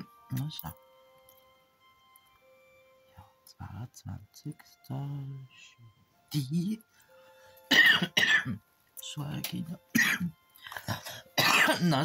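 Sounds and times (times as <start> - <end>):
woman coughing: 7.7 - 8.6, 9.9 - 10.3, 10.9 - 12.0.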